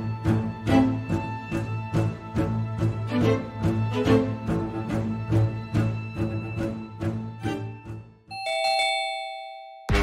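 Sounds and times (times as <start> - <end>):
dramatic background music: 0.0 - 8.3
two-note doorbell chime: 8.3 - 10.0.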